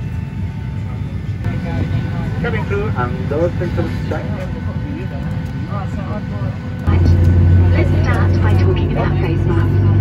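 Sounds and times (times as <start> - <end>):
airplane cabin low rumble: 0.0 - 10.0.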